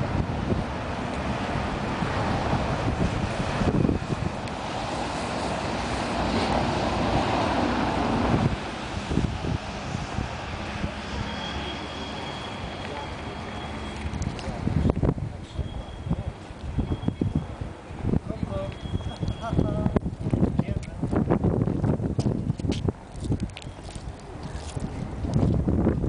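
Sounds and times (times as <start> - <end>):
wind buffeting microphone: 0.0 - 11.4, 12.6 - 26.0
street traffic rumble: 0.0 - 26.0.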